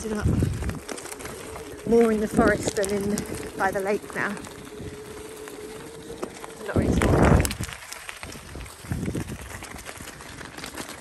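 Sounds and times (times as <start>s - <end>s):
electric motor whine: 0.0s - 11.0s
tyres crunching on gravel: 0.0s - 11.0s.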